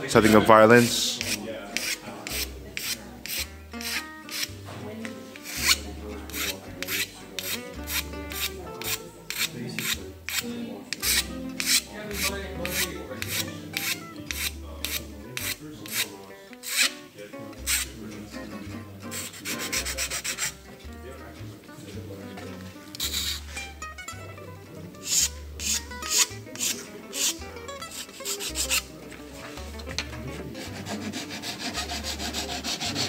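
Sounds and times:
hand file rasping on wood: 1.2 - 4.6, 5.4 - 16.9, 17.6 - 17.9, 19.1 - 20.6, 25.1 - 27.3, 27.9 - 28.9, 30.5 - 33.0.

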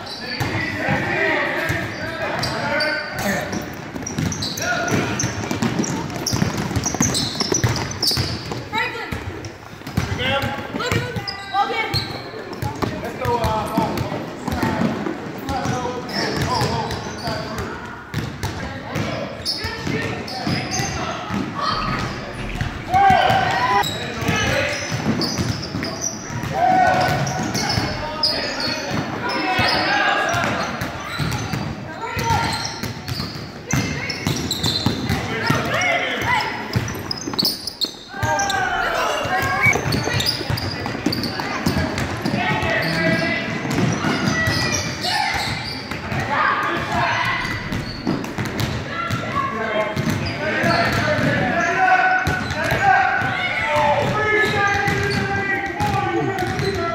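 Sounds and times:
basketball bouncing on wooden floor: 3.7 - 11.2, 43.5 - 44.6, 50.0 - 51.3, 54.9 - 56.8.

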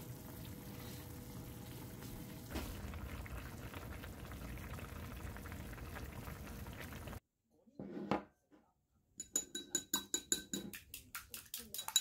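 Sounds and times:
broth simmering in a frying pan: 0.0 - 7.2.

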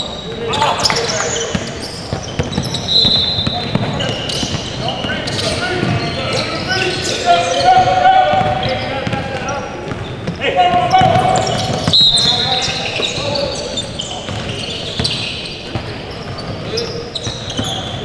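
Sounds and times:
players calling out: 0.0 - 18.0
ball bouncing on hardwood court: 0.3 - 6.4, 7.6 - 13.6, 14.2 - 18.0.

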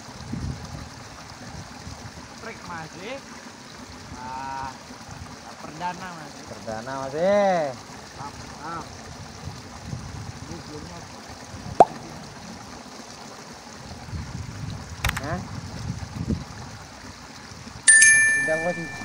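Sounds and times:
sharp click: 15.0 - 15.2
bright bell-like ding: 17.9 - 19.0.

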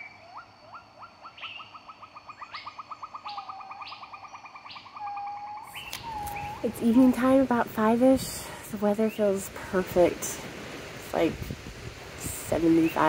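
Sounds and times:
bird calling with fast trill: 0.0 - 7.2.

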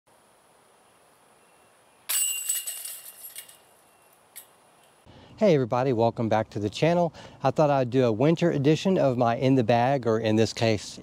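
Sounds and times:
metal chains jangling: 2.1 - 3.8.

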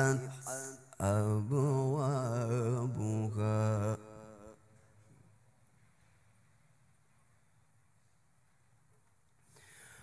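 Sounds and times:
man reciting melodically over speakers: 0.0 - 5.0.

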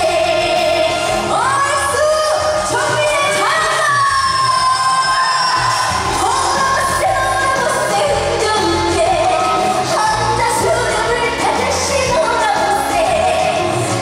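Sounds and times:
amplified backing music: 0.0 - 14.0
woman singing into microphone: 0.0 - 14.0.

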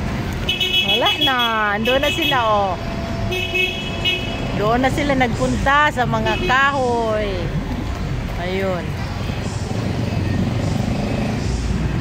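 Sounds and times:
vehicle engines passing: 0.0 - 12.0.

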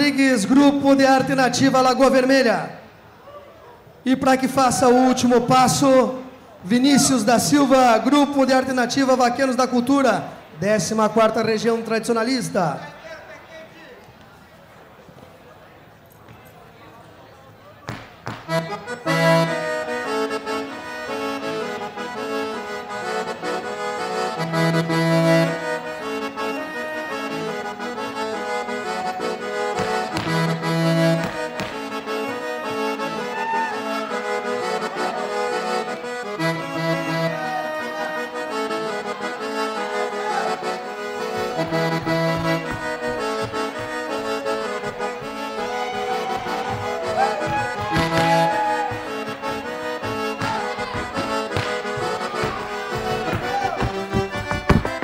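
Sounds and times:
accordion playing: 0.0 - 3.1, 4.1 - 12.9, 18.3 - 55.0
boots on wooden floor: 41.3 - 55.0.

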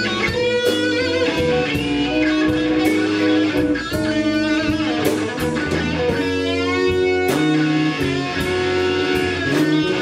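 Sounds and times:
blues band playing: 0.0 - 10.0
electric guitar note bends: 0.0 - 10.0.

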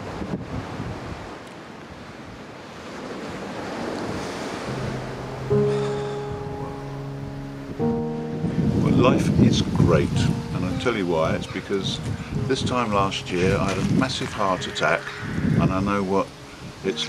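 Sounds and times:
wind on microphone: 0.0 - 1.4, 3.6 - 17.0
background music chords: 4.7 - 17.0.

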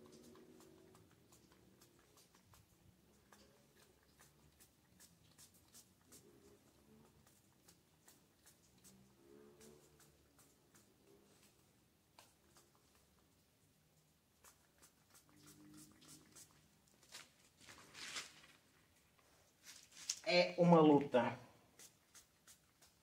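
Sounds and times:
soft rustle: 4.6 - 20.3.

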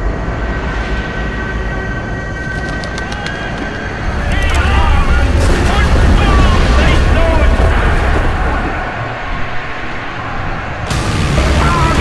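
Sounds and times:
rushing rumbling noise: 0.0 - 12.0.

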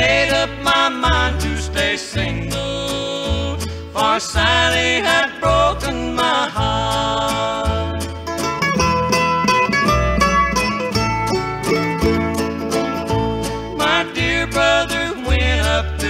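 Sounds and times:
person singing: 0.0 - 8.2, 13.0 - 16.0
country music instrumental: 0.0 - 16.0.

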